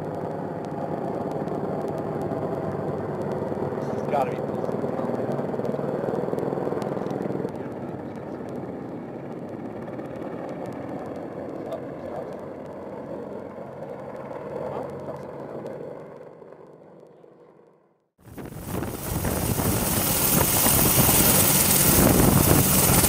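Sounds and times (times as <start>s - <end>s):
helicopter engine and rotor noise: 0.0s - 23.0s.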